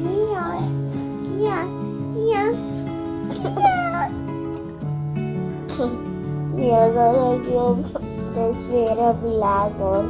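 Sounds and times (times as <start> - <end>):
background music: 0.0 - 10.0
child's meow-like cry: 3.3 - 4.2.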